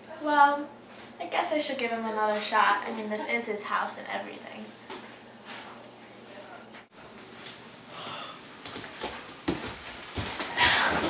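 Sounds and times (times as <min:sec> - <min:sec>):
person sighing: 0:07.9 - 0:08.4, 0:10.5 - 0:11.0.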